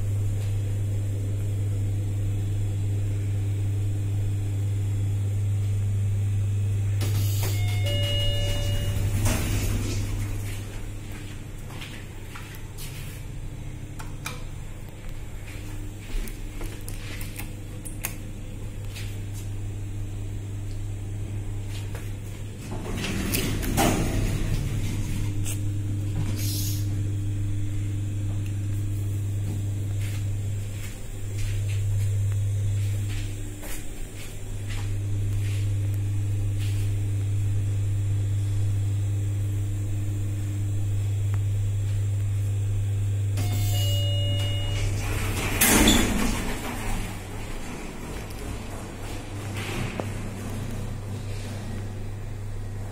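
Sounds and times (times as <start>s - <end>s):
elevator drive hum: 0.0s - 52.9s
short electronic tone: 7.0s - 9.7s, 43.4s - 45.0s
elevator doors sliding: 7.0s - 12.1s, 21.1s - 27.0s, 43.4s - 52.9s.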